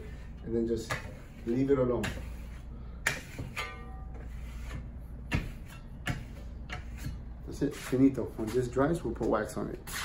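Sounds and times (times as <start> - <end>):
steel trowel scraping plaster: 0.0 - 8.8.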